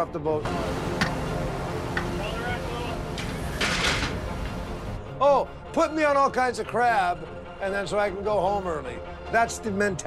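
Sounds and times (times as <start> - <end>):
boat engine low rumble: 0.5 - 5.0.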